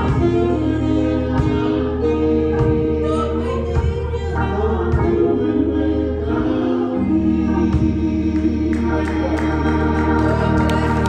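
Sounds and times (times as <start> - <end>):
accompaniment with low bass: 0.0 - 11.0
gospel group singing: 0.0 - 11.0.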